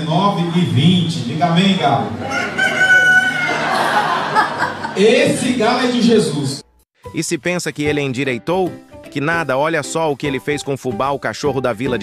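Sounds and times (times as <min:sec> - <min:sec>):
rooster crowing: 0:02.2 - 0:04.8.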